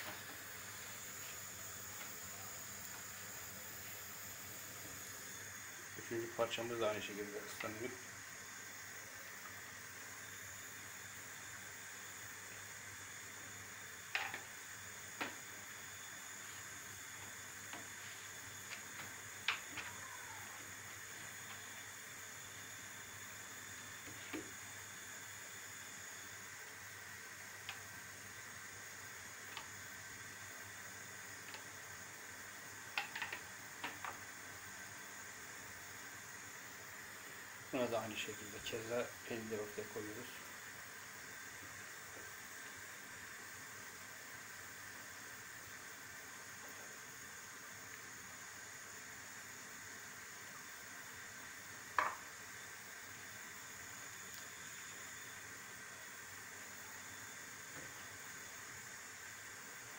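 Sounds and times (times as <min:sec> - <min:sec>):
faint steady hiss: 0:00.0 - 0:59.9.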